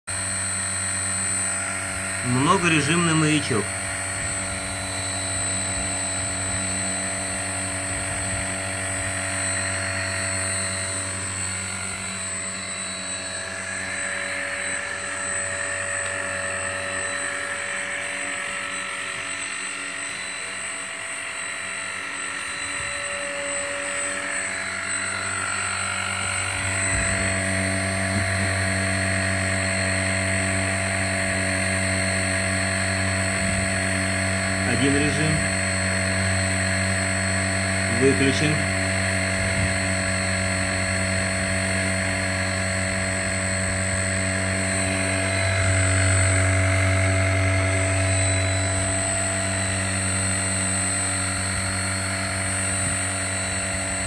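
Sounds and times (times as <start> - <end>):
machine hum: 0.1 - 54.0.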